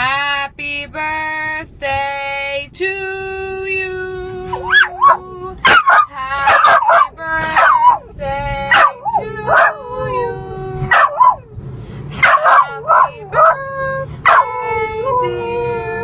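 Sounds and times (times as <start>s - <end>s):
small dog howling and yipping: 4.5s - 8.0s, 8.7s - 10.3s, 10.9s - 11.4s, 12.2s - 13.6s, 14.2s - 15.4s.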